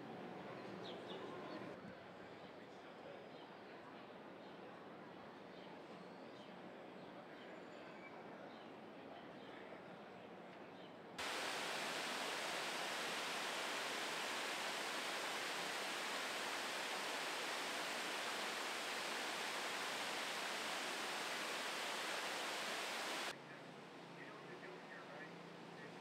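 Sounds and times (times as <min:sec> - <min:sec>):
waterfall rushing into pool: 0:11.2 - 0:23.3.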